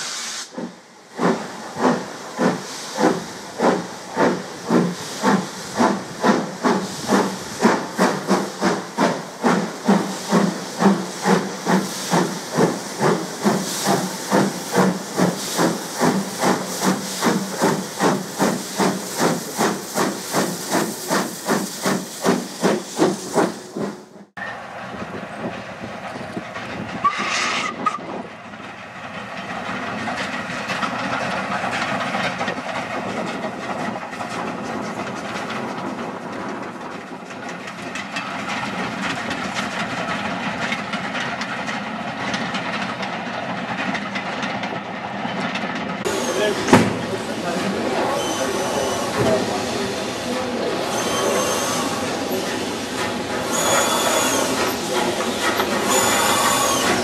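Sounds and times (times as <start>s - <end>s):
steam hissing: 0.0s - 24.0s, 46.0s - 57.0s
steam locomotive exhaust beats: 0.0s - 57.0s
train running: 0.0s - 57.0s.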